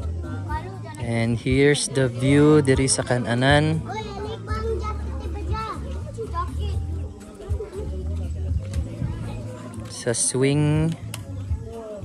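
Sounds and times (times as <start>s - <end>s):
children calling and chattering: 0.0s - 12.0s.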